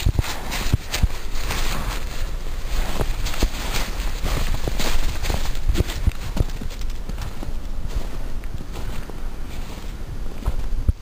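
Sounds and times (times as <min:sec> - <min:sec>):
hooves thudding in snow: 0:00.0 - 0:11.0.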